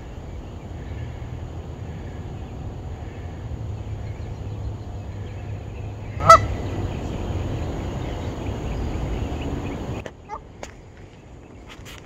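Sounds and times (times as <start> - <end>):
low background rumble: 0.0 - 11.6
goose honking: 6.1 - 7.1.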